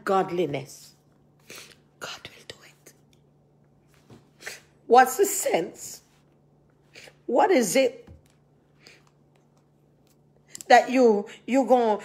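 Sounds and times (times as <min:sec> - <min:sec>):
woman whispering: 0:02.0 - 0:03.0.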